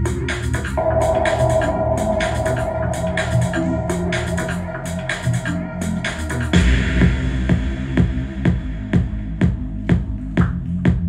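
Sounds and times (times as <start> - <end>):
deep bass: 0.0 - 11.0
drum machine beat: 0.0 - 11.0
electronic dance music: 0.0 - 11.0.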